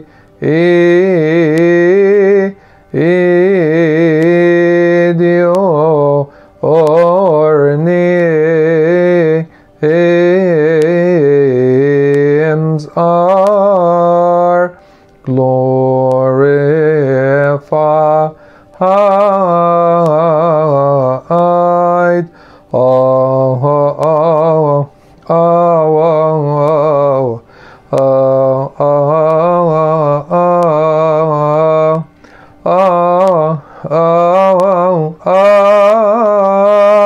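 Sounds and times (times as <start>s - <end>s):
man singing a hymn solo: 0.0s - 37.0s.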